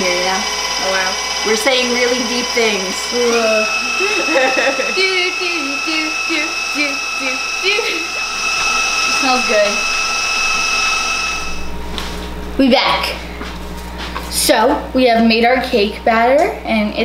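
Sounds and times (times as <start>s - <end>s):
voices talking: 0.0s - 10.2s
stand mixer whining: 0.0s - 12.6s.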